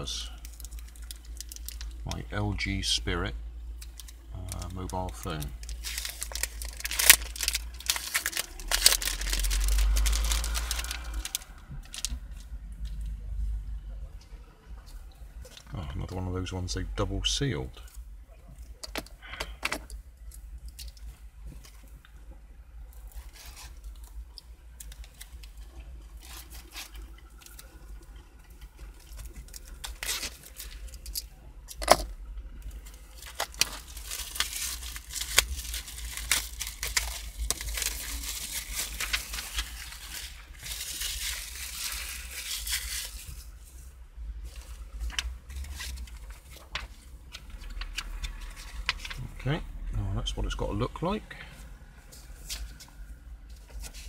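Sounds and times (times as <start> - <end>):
plastic wrapping crinkling: 0.0 - 2.7, 3.6 - 13.2, 22.8 - 49.4
card and paper rustling: 3.9 - 12.2, 32.8 - 43.6, 44.4 - 49.3.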